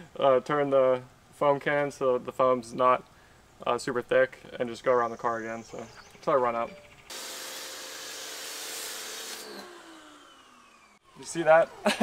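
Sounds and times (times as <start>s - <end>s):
pressure washer spray hiss: 7.1s - 9.6s
motor winding down whine: 7.1s - 12.0s
pump motor hum: 7.1s - 12.0s.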